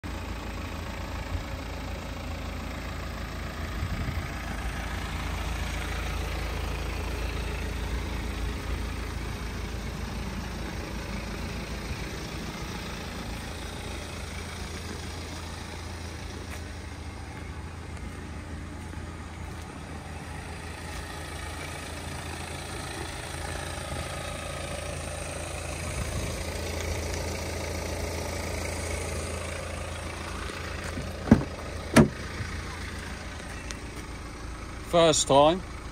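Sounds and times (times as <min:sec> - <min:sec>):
diesel engine idling: 0:00.0 - 0:35.9.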